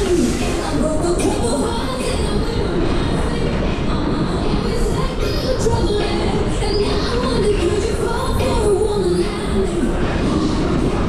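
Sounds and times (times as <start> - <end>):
ride car wheels rumbling on rails: 0.0 - 11.0.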